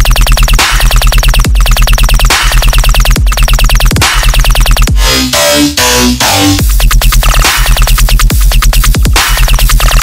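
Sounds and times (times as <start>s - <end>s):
fast stuttering synth: 0.0s - 5.4s, 6.5s - 10.0s
heavy sub-bass: 0.0s - 10.0s.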